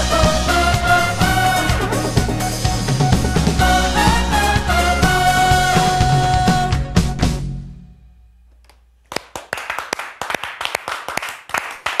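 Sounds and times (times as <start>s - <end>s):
people clapping: 9.0s - 12.0s.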